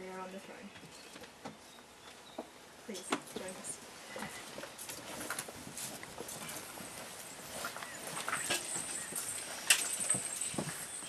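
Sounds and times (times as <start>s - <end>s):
footsteps: 3.1s - 11.0s.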